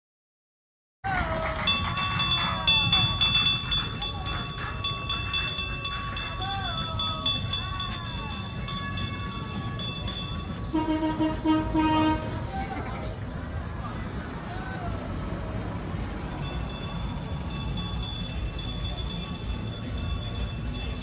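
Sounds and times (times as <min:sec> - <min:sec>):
people's voices: 0:01.1 - 0:21.0
road train rumbling past: 0:01.1 - 0:21.0
bell ringing rapidly: 0:01.6 - 0:11.3, 0:16.2 - 0:21.0.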